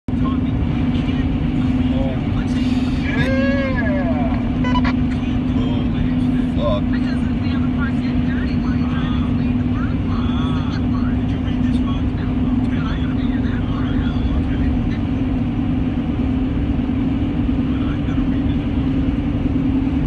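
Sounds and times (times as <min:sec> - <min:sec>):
constant low hum: 0:00.1 - 0:20.0
engine and road drone: 0:00.1 - 0:20.0.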